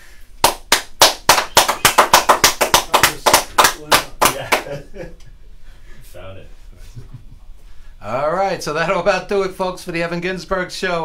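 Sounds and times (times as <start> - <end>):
people clapping: 0.4 - 4.8.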